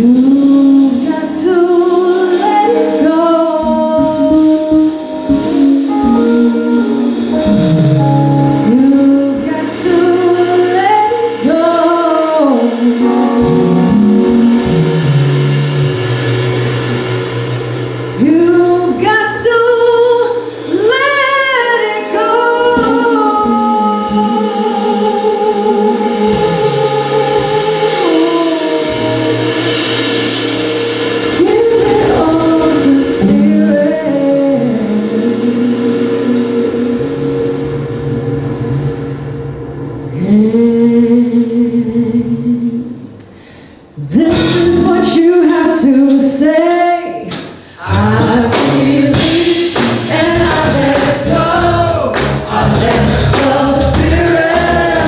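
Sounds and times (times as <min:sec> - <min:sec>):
person singing: 0:00.0 - 0:15.4, 0:18.2 - 0:30.4, 0:31.2 - 0:37.8, 0:43.9 - 0:55.0
keyboard accompaniment: 0:00.0 - 0:55.0
live band playing: 0:00.0 - 0:55.0
vocal group singing held notes: 0:31.3 - 0:37.7, 0:47.0 - 0:55.0.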